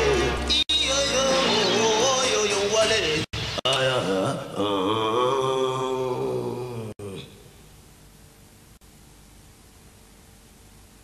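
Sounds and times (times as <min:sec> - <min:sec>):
man chanting a long cry: 0:03.7 - 0:07.5.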